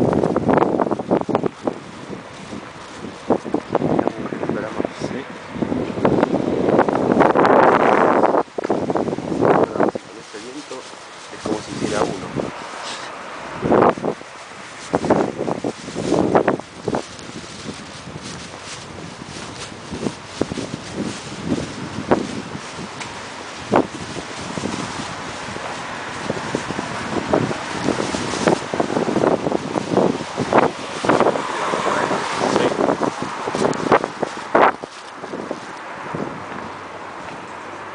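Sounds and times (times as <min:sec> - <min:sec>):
passing car traffic: 0:00.0 - 0:37.9
wind buffeting microphone: 0:00.0 - 0:37.9.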